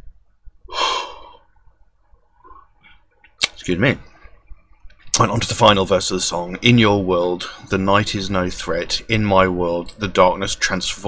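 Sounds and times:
man's loud breath out: 0.7 - 1.4.

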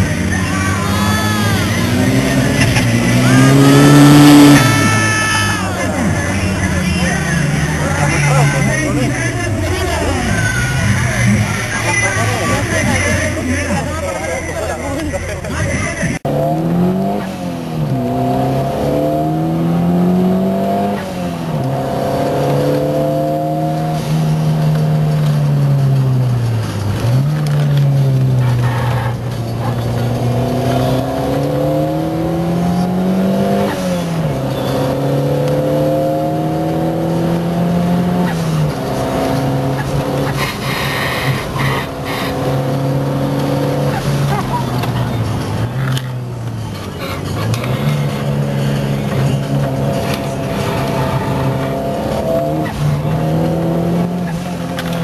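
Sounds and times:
race car engine revving: 0.0 - 55.0.

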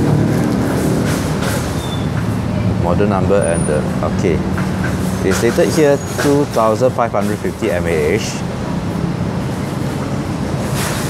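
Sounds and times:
vehicle engine running: 0.0 - 5.6
road noise: 0.0 - 11.0.

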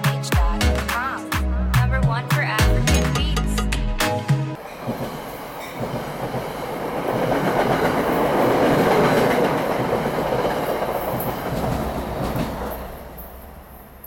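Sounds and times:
commuter train passing: 4.5 - 14.0.

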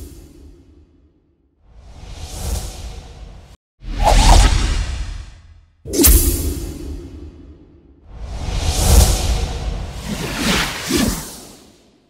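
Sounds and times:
whoosh with low rumble: 8.0 - 11.7.

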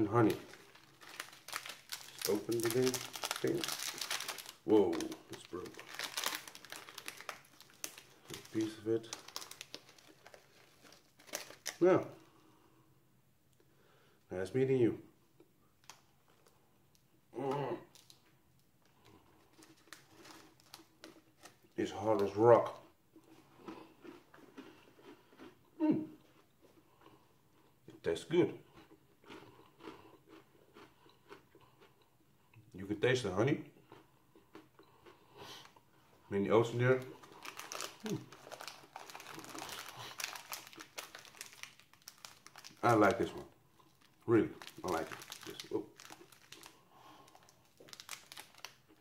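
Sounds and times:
faint clicks and crinkles: 0.2 - 11.8, 15.8 - 17.1, 17.8 - 23.4, 37.0 - 49.0
person chewing crunchy bar: 0.2 - 11.8, 22.7 - 27.8, 28.7 - 32.2, 33.8 - 35.8, 37.0 - 43.0, 43.7 - 49.0.

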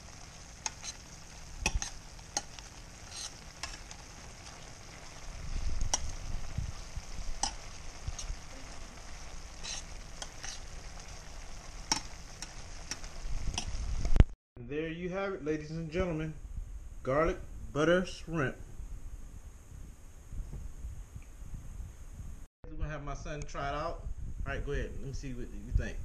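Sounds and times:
shrimp sizzling in a frying pan: 0.0 - 14.3
utensil clicking against pan: 1.6 - 4.0, 5.8 - 6.2, 7.4 - 7.6, 11.9 - 13.7.

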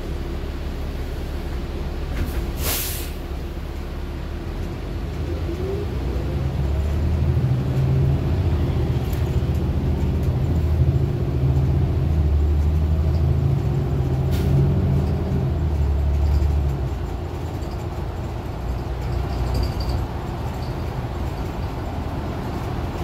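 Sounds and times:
bus engine rumbling: 0.0 - 23.0.

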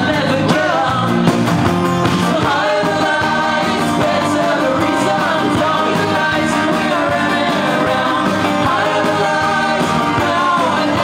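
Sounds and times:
man singing: 0.0 - 1.3, 2.2 - 11.0
acoustic guitar: 0.0 - 11.0.

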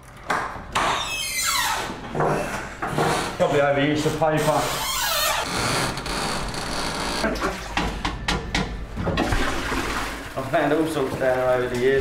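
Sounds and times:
door squeaking on hinge: 0.8 - 3.4, 4.4 - 7.4
door rubbing scrape: 1.0 - 7.3.

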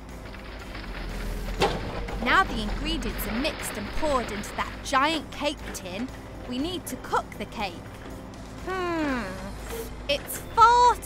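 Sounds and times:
cement mixer drum running: 0.0 - 7.1
soft background music: 0.0 - 11.0.

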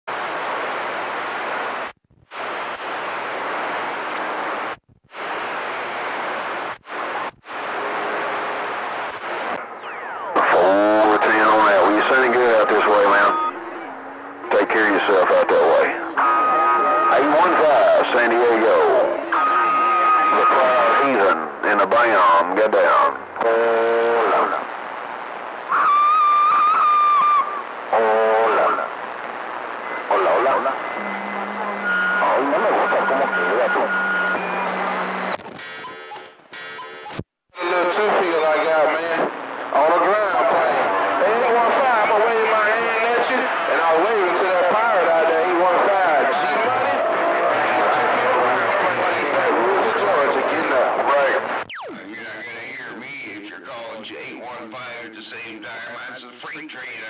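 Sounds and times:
distorted radio voices: 0.1 - 57.0
radio static hiss: 0.1 - 57.0.

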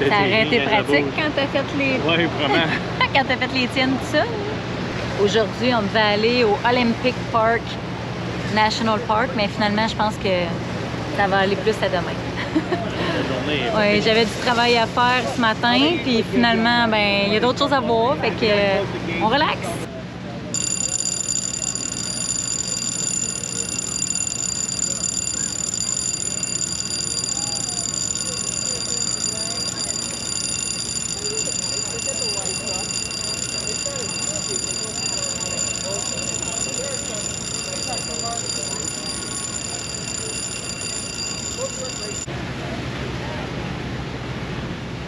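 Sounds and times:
distant voices murmuring: 19.8 - 43.5
high-pitched machinery whine: 20.6 - 42.3.

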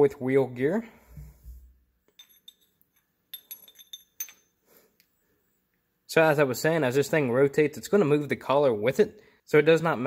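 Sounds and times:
metal gear clinking: 2.2 - 4.5.

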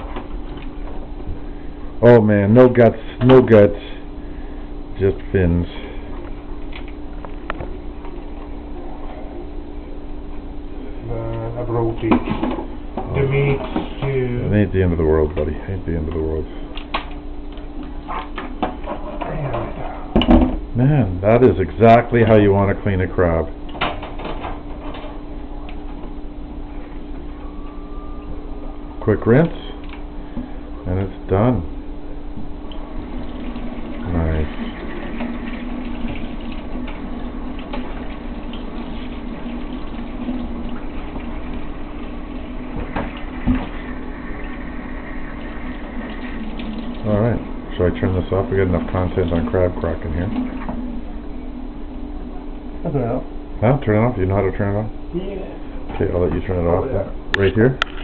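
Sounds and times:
faucet water splashing: 32.7 - 51.0.

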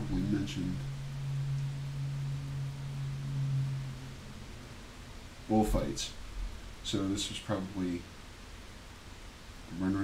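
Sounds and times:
faint room hiss: 0.0 - 10.0
low electrical hum: 0.0 - 10.0.

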